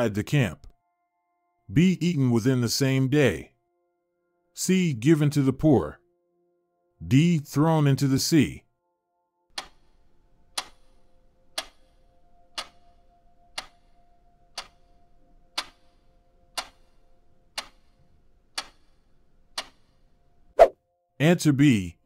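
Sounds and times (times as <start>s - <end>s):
faint steady tone: 8.4s - 21.8s
timer ticking: 9.5s - 20.1s.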